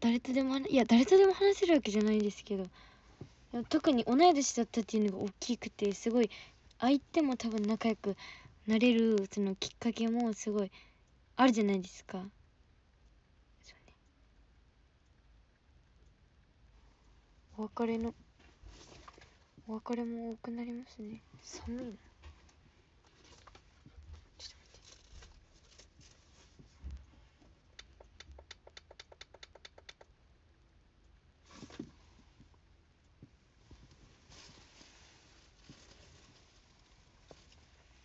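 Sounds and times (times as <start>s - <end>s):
faint breathy hiss: 2.7s - 3.6s, 8.2s - 8.7s, 31.4s - 32.5s.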